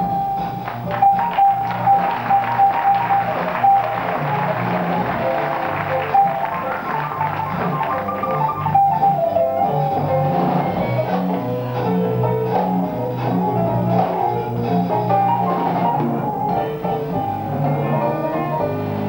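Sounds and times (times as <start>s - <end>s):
double bass: 0.0s - 19.0s
melodic line: 6.0s - 10.0s.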